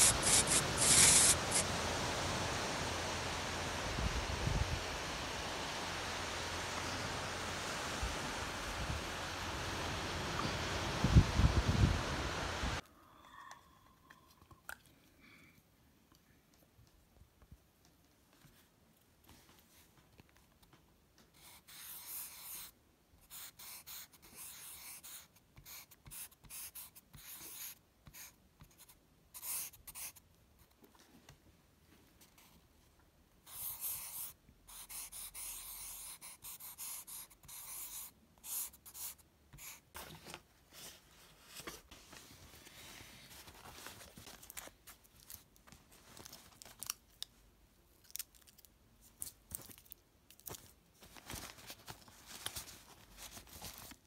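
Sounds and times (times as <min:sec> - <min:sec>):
marker drawing on paper: 0:00.0 - 0:01.7, 0:21.4 - 0:30.2, 0:33.5 - 0:39.9
plastic wrapper crinkling: 0:43.4 - 0:47.3, 0:48.0 - 0:54.0.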